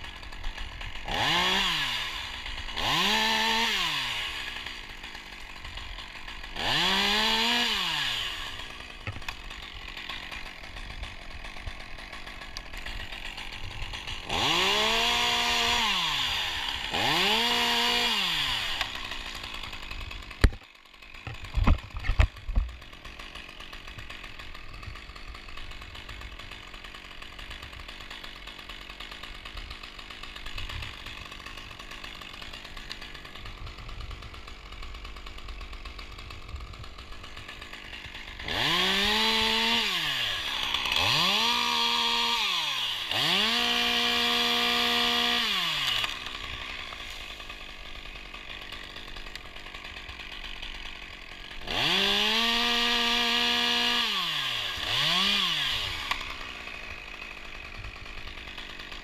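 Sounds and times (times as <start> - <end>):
chainsaw engine revving: 0.0 - 59.0.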